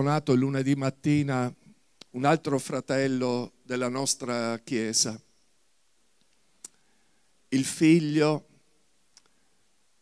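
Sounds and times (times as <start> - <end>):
man speaking over microphone: 0.0 - 5.2, 7.5 - 8.5.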